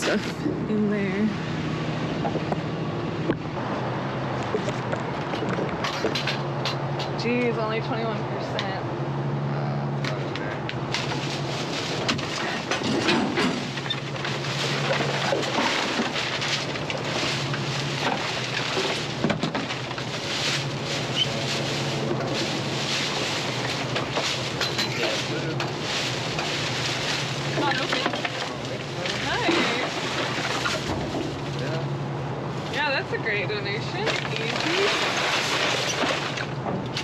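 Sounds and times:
steady low hum: 0.0 - 37.0
plastic trash bag rustling: 11.0 - 31.8, 32.7 - 36.6.

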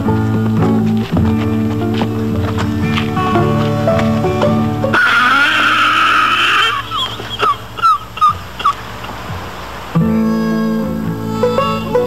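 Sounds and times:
car tyres squealing: 0.0 - 12.0
short high squeaks: 4.9 - 12.0.

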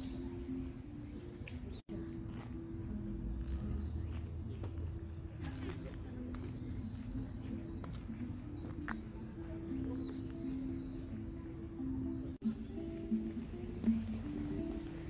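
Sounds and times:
faint voices: 0.0 - 15.0
music of slow held notes: 0.0 - 15.0.

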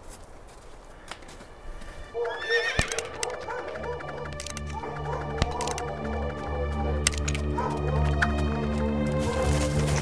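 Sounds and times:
background music with sustained notes: 1.0 - 10.0
horse whinnying: 2.1 - 3.4.

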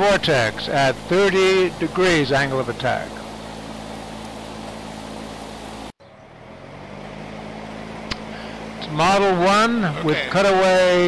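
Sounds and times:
electric fan blowing air: 0.0 - 11.0.

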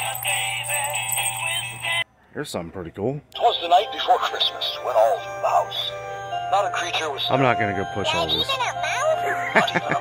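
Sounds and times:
music from toy speaker: 0.0 - 2.0.

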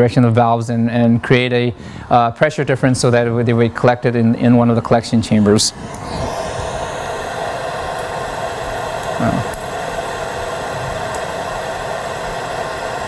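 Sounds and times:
room tone hiss and hum: 0.0 - 13.0.

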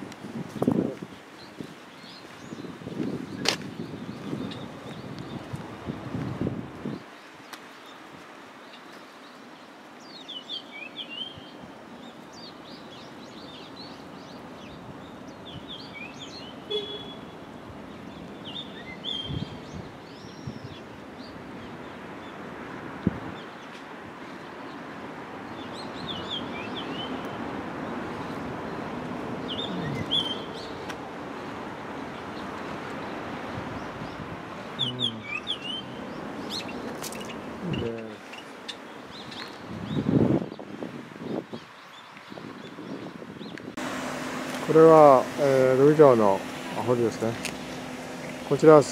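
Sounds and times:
small birds chirping: 0.0 - 22.5, 23.2 - 43.8
outdoor background hum: 43.8 - 48.9.

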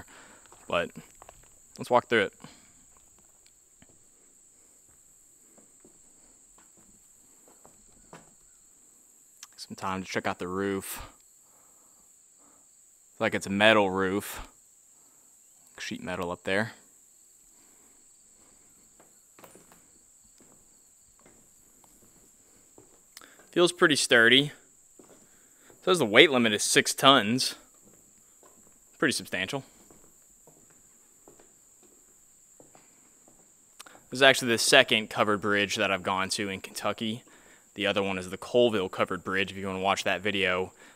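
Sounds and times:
footsteps on wooden deck: 0.0 - 1.8, 2.4 - 8.8, 17.5 - 34.7
crickets chirping: 0.0 - 40.9
high insect drone: 0.0 - 40.9.

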